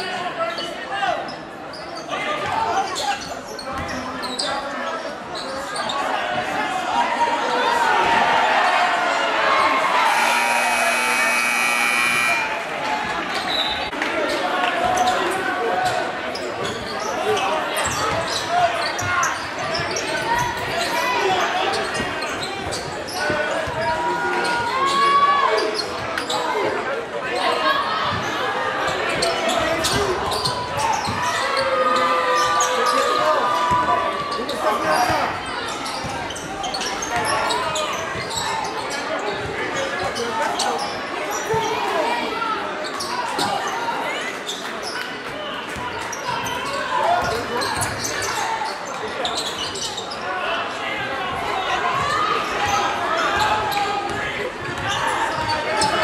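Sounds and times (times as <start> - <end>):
crowd chatter: 0.0 - 56.0
steady tone: 10.0 - 12.6.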